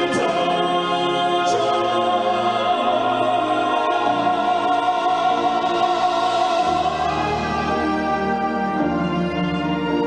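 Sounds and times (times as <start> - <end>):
orchestral accompaniment: 0.0 - 10.0.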